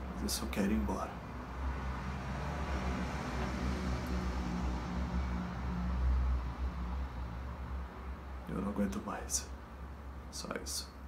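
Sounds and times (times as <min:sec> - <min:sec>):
vehicle engine rumble: 0:00.0 - 0:10.6.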